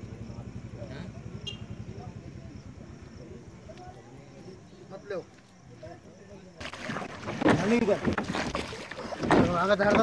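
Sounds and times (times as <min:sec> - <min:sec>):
voices talking: 0:00.0 - 0:10.0
water noise: 0:06.4 - 0:10.0.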